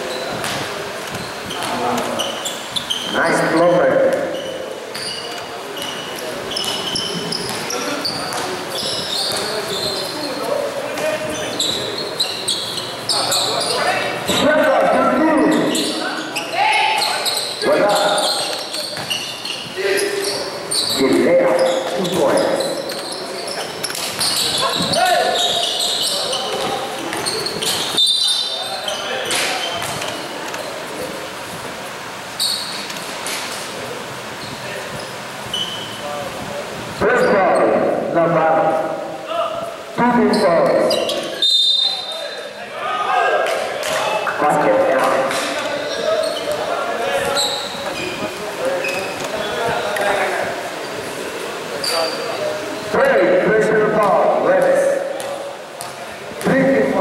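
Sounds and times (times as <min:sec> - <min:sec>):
people shouting and talking: 0:00.0 - 0:57.0
basketball bouncing on court: 0:00.3 - 0:02.0, 0:06.6 - 0:08.5, 0:09.2 - 0:10.0, 0:18.9 - 0:19.8, 0:29.7 - 0:30.2, 0:54.0 - 0:56.5.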